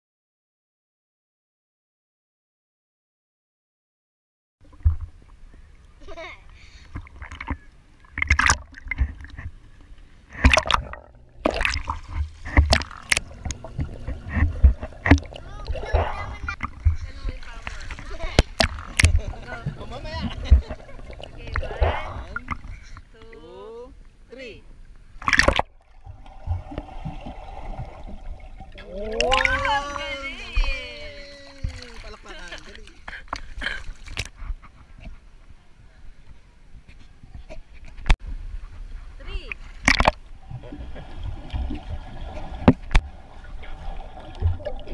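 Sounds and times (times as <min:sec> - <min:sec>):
low churning rumble: 0:04.6 - 0:34.0
pool water splashing: 0:04.6 - 0:35.7, 0:38.2 - 0:44.9
muffled underwater sound: 0:12.4 - 0:22.8
person speaking: 0:15.4 - 0:24.7, 0:28.8 - 0:33.2.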